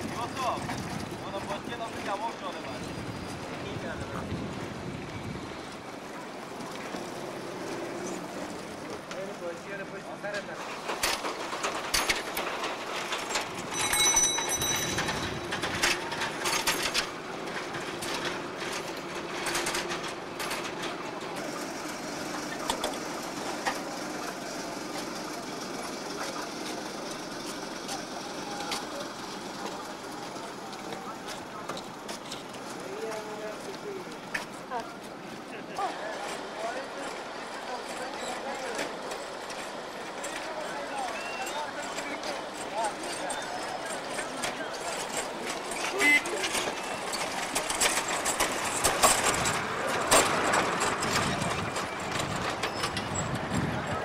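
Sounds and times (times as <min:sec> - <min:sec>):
people's voices: 0:00.0 - 0:54.0
steady background noise: 0:00.0 - 0:54.0
high ringing tone: 0:13.7 - 0:15.5.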